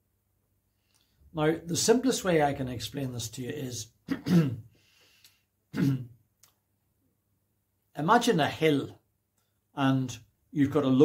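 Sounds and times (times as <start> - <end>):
man clearing his throat: 4.1 - 4.7, 5.7 - 6.2.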